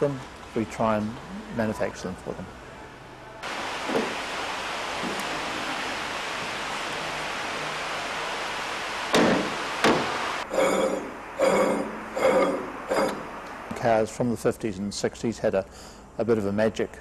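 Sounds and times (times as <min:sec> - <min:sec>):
steady hiss: 0:03.4 - 0:16.9
sharp knocks: 0:09.1 - 0:10.2.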